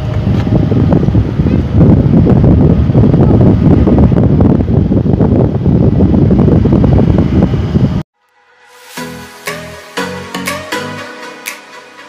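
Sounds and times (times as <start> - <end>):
wind buffeting microphone: 0.0 - 8.1.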